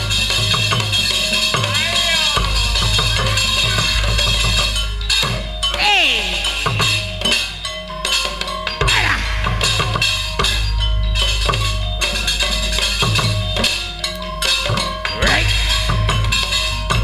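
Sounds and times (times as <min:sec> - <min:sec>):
dangdut band music: 0:00.0 - 0:17.0
drums and percussion beat: 0:00.0 - 0:17.0.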